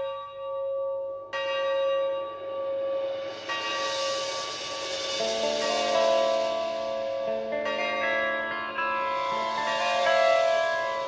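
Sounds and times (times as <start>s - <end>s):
bell-like chiming tones: 0.0s - 11.0s.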